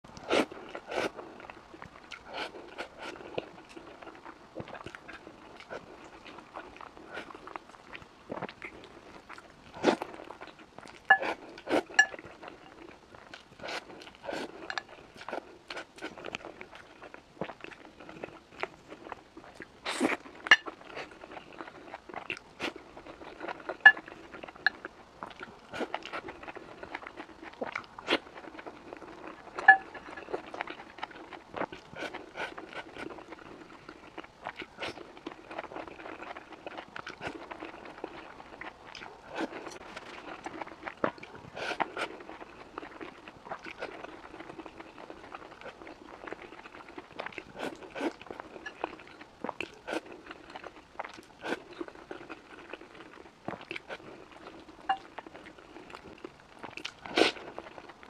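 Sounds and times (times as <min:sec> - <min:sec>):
chewing and mouth smacks: 0:00.1 - 0:58.0.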